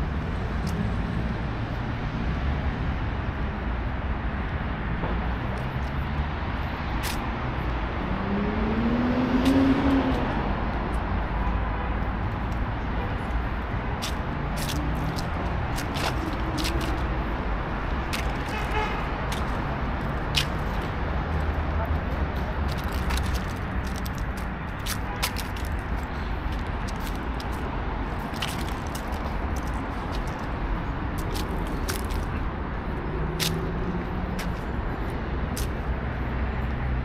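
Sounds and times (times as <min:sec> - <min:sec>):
traffic rumble: 0:00.0 - 0:37.0.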